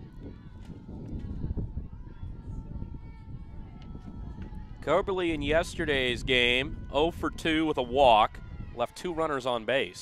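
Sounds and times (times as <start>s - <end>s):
wind blowing on microphone: 0.0s - 10.0s.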